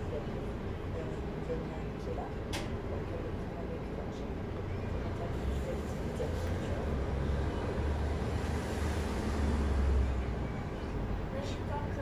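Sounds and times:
bus engine idling: 0.0 - 12.0.

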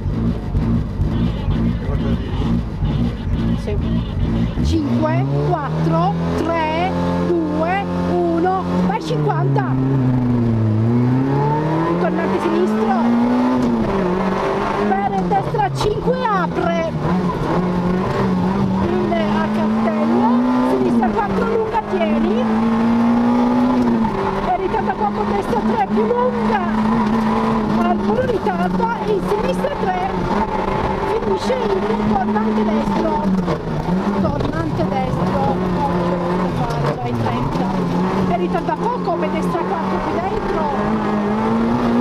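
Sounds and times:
car engine accelerating through gears: 0.0 - 42.0.

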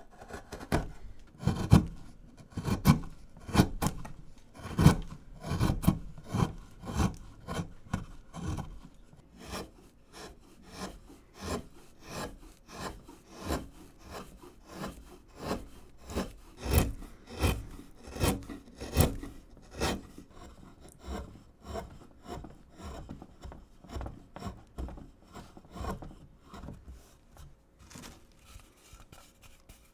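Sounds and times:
gouge scraping through wood: 0.0 - 27.2, 27.8 - 29.9.

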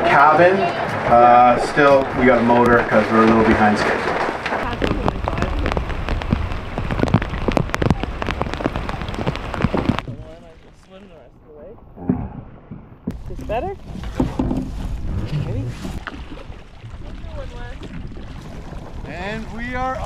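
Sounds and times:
heavy rain pattering: 0.0 - 11.3, 17.0 - 20.0.

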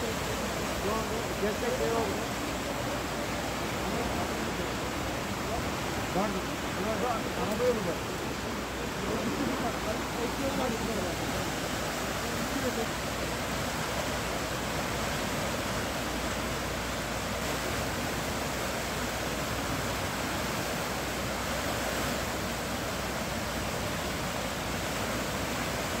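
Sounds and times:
floodwater rushing: 0.0 - 26.0.

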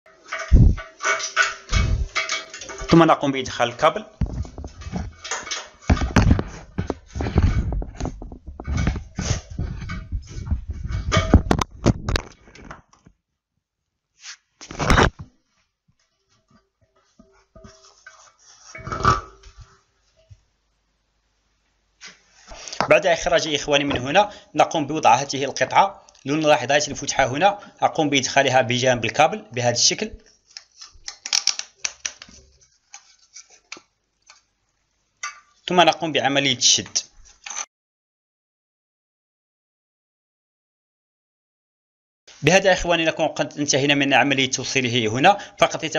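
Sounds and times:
knocking and scraping in ceramic basin: 0.1 - 3.1, 3.7 - 12.3, 17.0 - 19.8.

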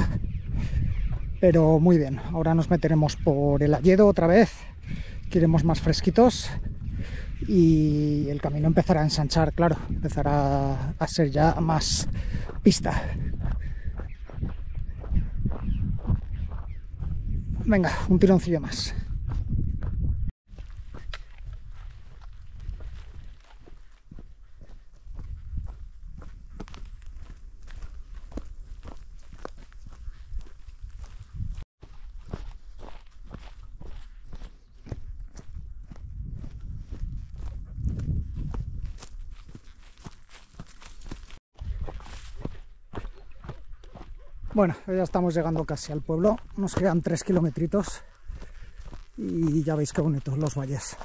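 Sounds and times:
footsteps on dirt trail: 0.0 - 51.0.

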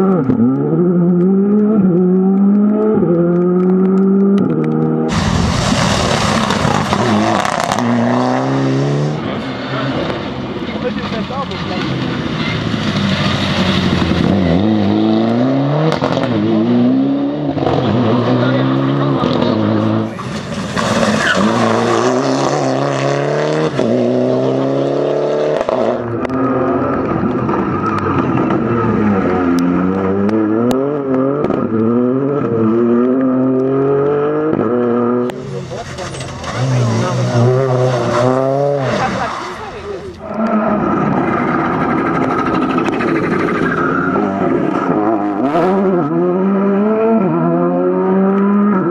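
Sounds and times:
rally car engines revving: 0.0 - 48.9.

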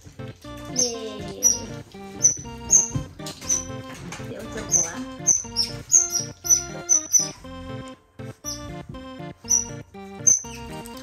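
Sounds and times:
background music: 0.0 - 11.0
otter chirps: 0.6 - 11.0.

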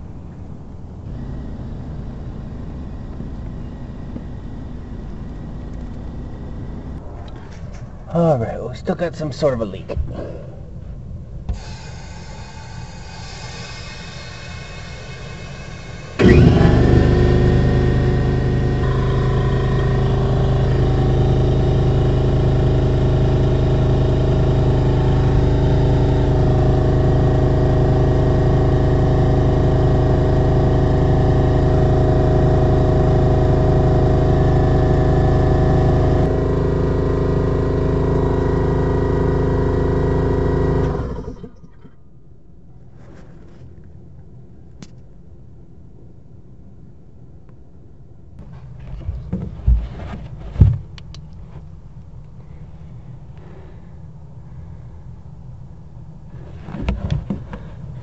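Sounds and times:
air compressor running: 1.0 - 7.0, 11.5 - 41.6.

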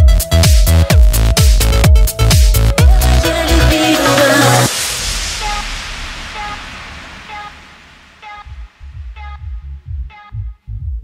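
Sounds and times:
thumping kick and bass: 0.0 - 11.0
white-noise sweep: 2.8 - 10.0.

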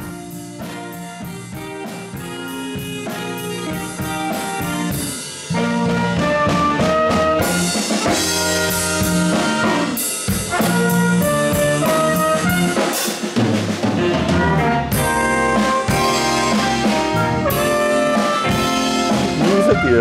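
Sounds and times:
jazz band playing: 0.0 - 20.0
trumpet: 0.0 - 20.0.

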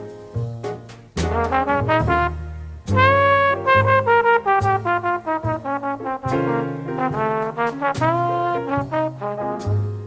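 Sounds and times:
low accompanying notes: 1.2 - 9.9
trombone melody: 1.2 - 10.0.

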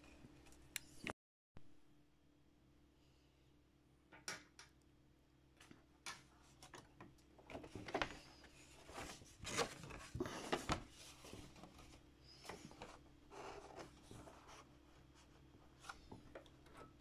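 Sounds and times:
faint steady hum: 0.0 - 17.0
paper rustling: 7.5 - 16.9.

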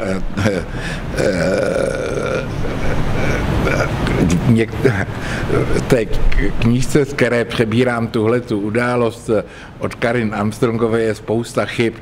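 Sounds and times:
man making hesitation sounds: 0.0 - 6.8
steady low rumble: 0.0 - 10.8.

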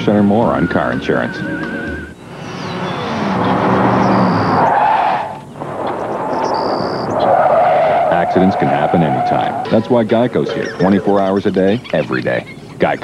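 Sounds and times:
car driving: 0.0 - 11.8
tires squealing in a skid: 1.5 - 11.1.

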